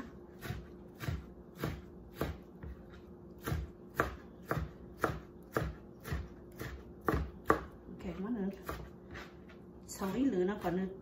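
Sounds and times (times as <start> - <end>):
knife chopping on plastic board: 0.0 - 9.4.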